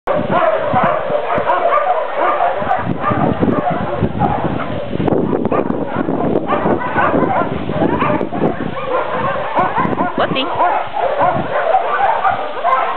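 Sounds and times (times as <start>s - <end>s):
dog whining and yipping: 5.6s - 12.9s.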